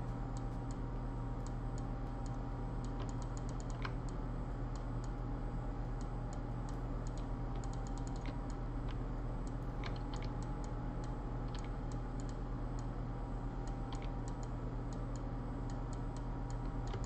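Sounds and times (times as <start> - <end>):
low electrical hum: 0.0 - 17.0
computer keys clicking: 1.4 - 5.2, 5.9 - 12.9, 13.6 - 17.0.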